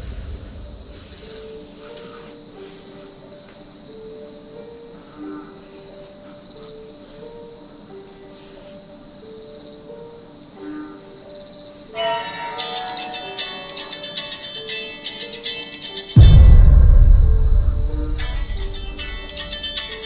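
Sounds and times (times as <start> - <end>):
crickets chirping: 0.0 - 20.0
slow soft melody: 1.4 - 20.0.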